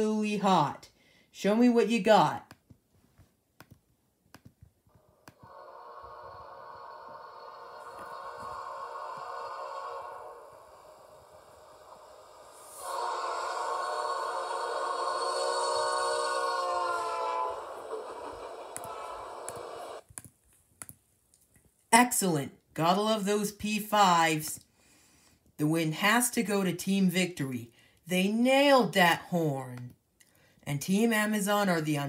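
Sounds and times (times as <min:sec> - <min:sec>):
train air horn through speakers: 0:05.5 - 0:20.0.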